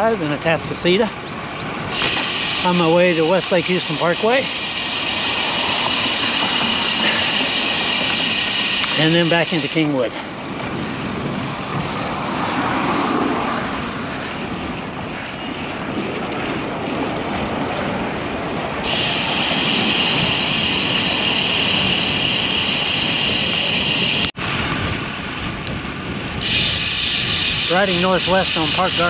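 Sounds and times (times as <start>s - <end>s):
wind on microphone: 0.1s - 29.0s
bike tyres on concrete: 0.7s - 29.0s
bike freehub buzzing: 1.9s - 10.7s, 18.8s - 24.4s, 26.3s - 29.0s.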